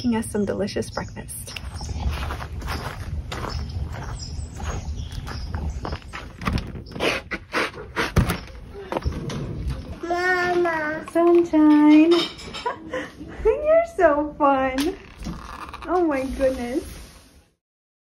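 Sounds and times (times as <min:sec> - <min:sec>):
low rumbling handling noise: 0:01.6 - 0:11.9
house door opening: 0:06.2 - 0:10.1.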